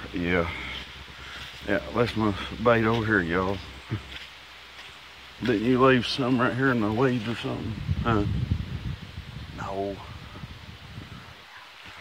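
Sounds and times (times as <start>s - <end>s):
wind buffeting microphone: 0.0s - 4.3s, 5.2s - 12.0s.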